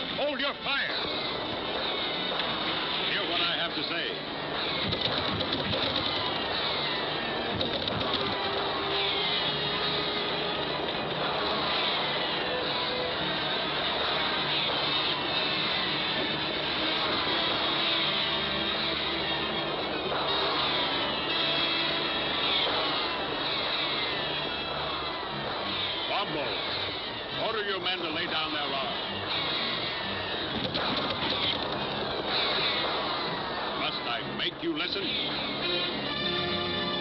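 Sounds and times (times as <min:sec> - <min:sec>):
busy orchestral score: 0:32.1 - 0:37.0.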